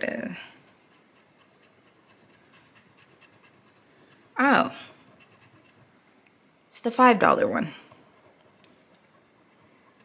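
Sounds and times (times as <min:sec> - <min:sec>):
faint scratching on scratch card: 0:00.0 - 0:06.0, 0:07.9 - 0:10.0.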